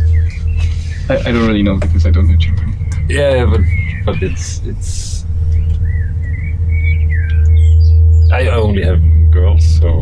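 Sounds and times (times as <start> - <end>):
bird chirping: 0.0 - 10.0
low rumble: 0.0 - 10.0.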